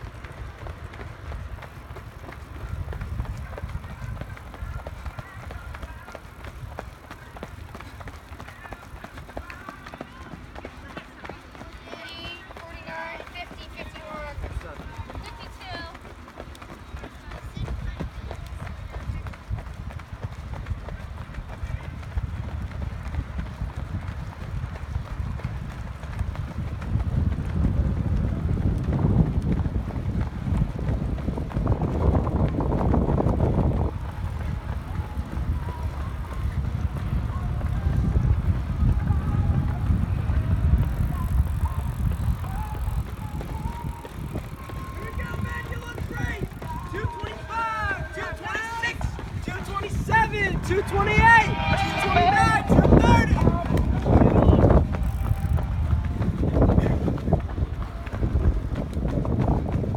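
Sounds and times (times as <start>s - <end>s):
runners' footsteps on track: 0.0s - 59.9s
wind rumble on microphone: 0.0s - 59.9s.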